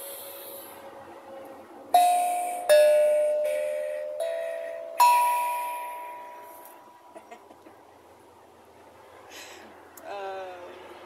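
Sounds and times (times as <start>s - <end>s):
steel tongue drum notes: 2.0s - 7.2s.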